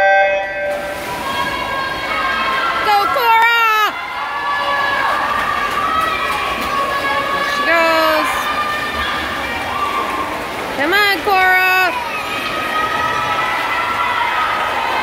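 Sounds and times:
swimmers splashing: 0.3 - 15.0
spectators cheering and shouting: 0.4 - 15.0.

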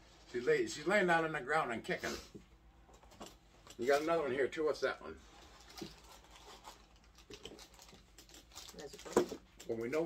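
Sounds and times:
plastic wrap crinkling: 5.3 - 10.0.

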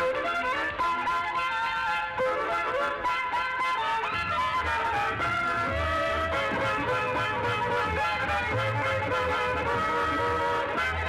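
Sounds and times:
violins playing dance tune: 4.1 - 11.0.

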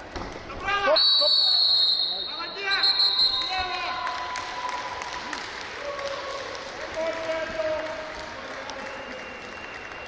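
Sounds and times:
referee's whistle blast: 0.8 - 3.7.

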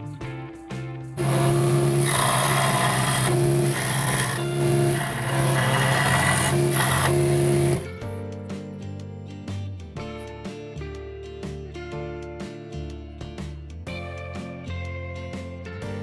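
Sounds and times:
scroll saw cutting wood: 1.2 - 8.0.

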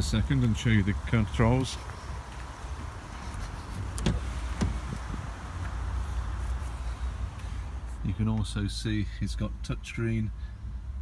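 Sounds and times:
car door latch click: 3.9 - 5.0.

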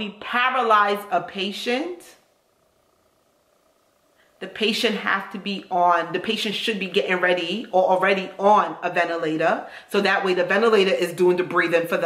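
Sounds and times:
person speaking: 4.4 - 12.0.

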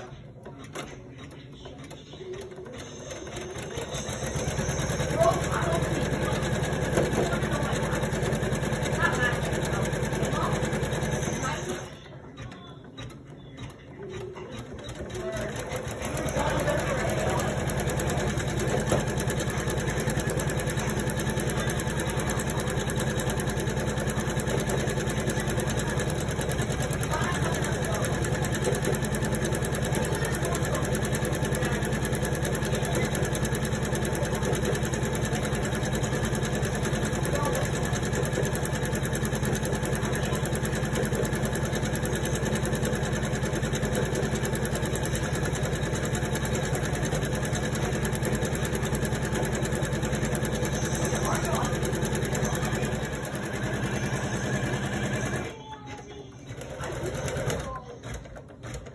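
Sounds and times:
embroidery machine stitching: 0.0 - 58.9.

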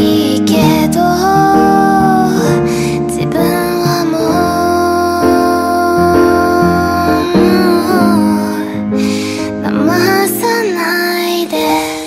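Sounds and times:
instrumental backing: 0.0 - 12.0
woman singing pop song: 0.0 - 12.0.

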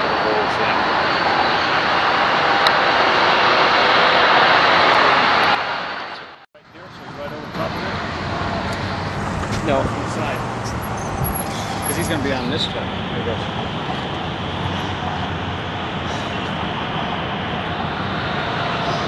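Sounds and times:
faint voices: 0.0 - 19.0
train cars rushing past: 6.9 - 19.0.

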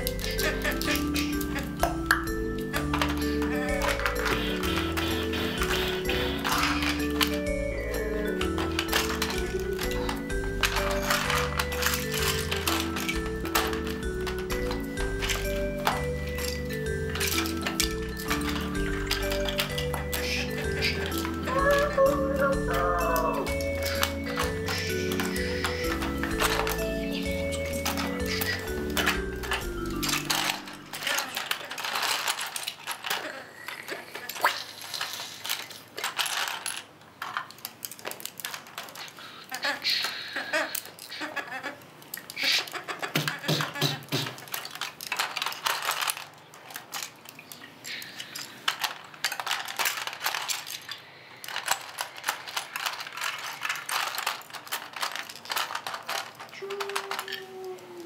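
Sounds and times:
music: 0.0 - 31.5
plastic bricks clattering: 0.0 - 58.0.

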